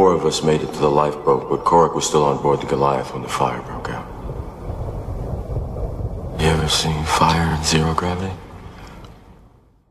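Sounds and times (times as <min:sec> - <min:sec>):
spoken samples: 0:00.0 - 0:04.2, 0:06.4 - 0:08.5
dark low rumbling drone: 0:00.0 - 0:09.7.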